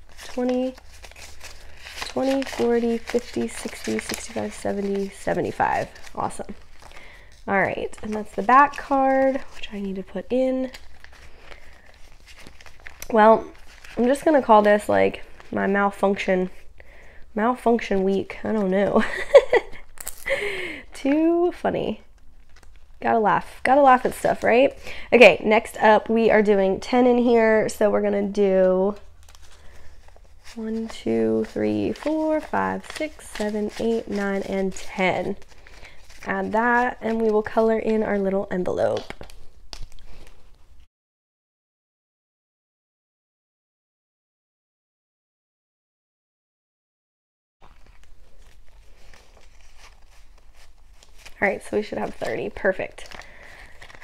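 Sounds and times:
paper and plastic rustling: 0:00.0 - 0:15.6, 0:28.9 - 0:40.7, 0:47.6 - 0:54.0.

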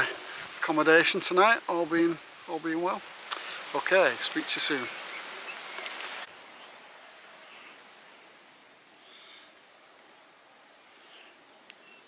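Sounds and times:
faint outdoor hiss: 0:00.0 - 0:12.0
rustle on microphone: 0:00.0 - 0:12.0
distant bird calls: 0:04.3 - 0:12.0.

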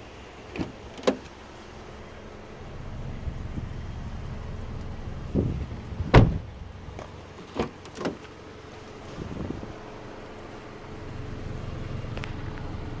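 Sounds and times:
faint steady hum: 0:00.0 - 0:13.0
sharp knocks on car: 0:05.4 - 0:06.4.

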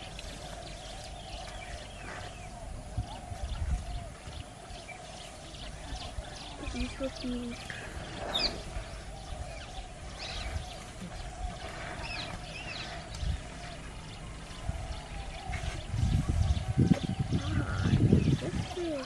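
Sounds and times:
bird chirps: 0:00.0 - 0:19.0.

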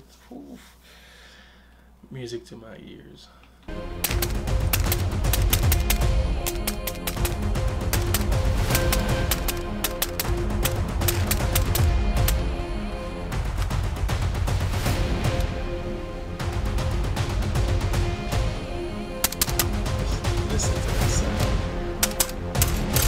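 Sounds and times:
background music: 0:03.7 - 0:23.0.

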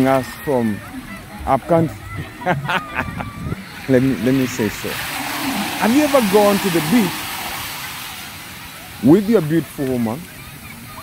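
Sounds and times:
sea surf washing over shore: 0:03.7 - 0:10.9.

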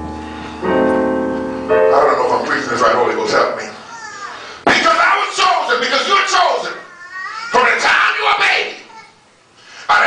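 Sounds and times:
man's voice through loudspeakers: 0:04.7 - 0:06.9, 0:07.5 - 0:08.9.

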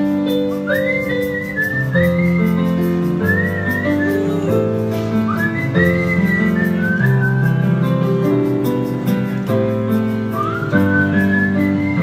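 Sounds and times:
electric piano chords: 0:00.0 - 0:12.0
man whistling a melody: 0:00.0 - 0:12.0.

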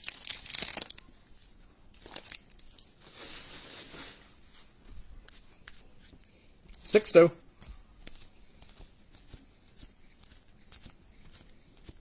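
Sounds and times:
plastic wrapper crinkling and tearing: 0:00.0 - 0:04.2.

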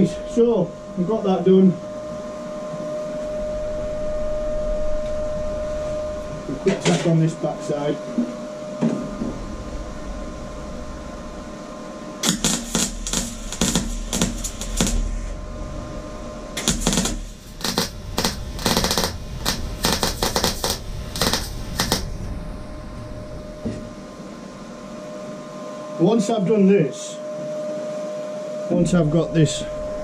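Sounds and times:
steady hum: 0:00.0 - 0:30.0
welding arc crackling: 0:12.2 - 0:15.4, 0:16.6 - 0:22.3.

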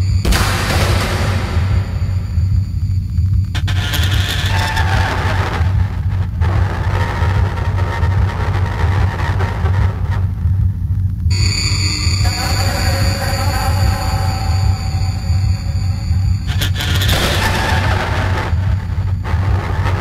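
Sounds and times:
high steady electronic tones: 0:00.0 - 0:08.3, 0:11.3 - 0:20.0
heavy bass drone: 0:00.0 - 0:20.0.

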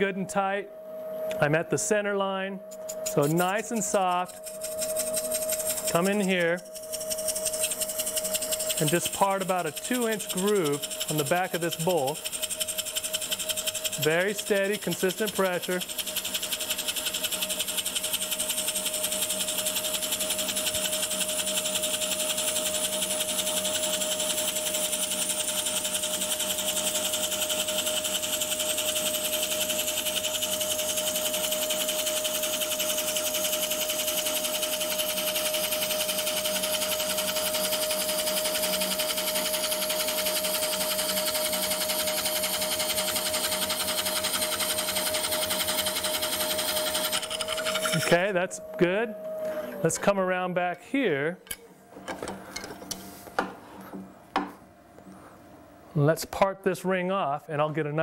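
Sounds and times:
running lathe tone: 0:01.2 - 0:50.8
wood cutting on lathe: 0:02.8 - 0:50.6.

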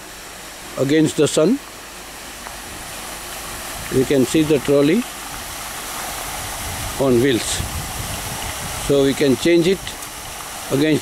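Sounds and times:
water pump rushing: 0:00.0 - 0:11.0.

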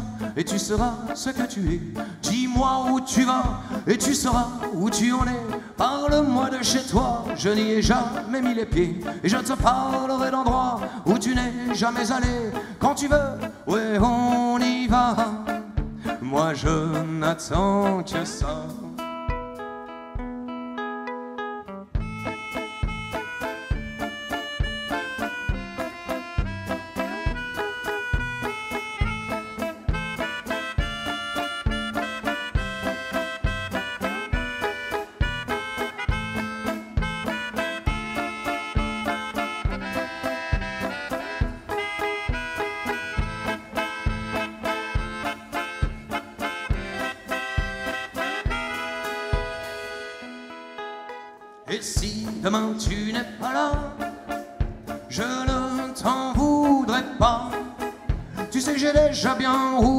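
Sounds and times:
accordion: 0:00.0 - 0:19.9, 0:21.1 - 0:59.9
band playing waltz: 0:00.0 - 0:20.4, 0:21.1 - 0:59.9.

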